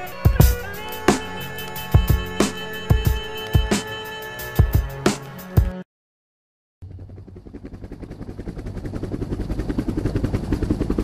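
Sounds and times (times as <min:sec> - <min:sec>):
helicopter rotor chop: 0:00.0 - 0:03.9, 0:06.8 - 0:11.0.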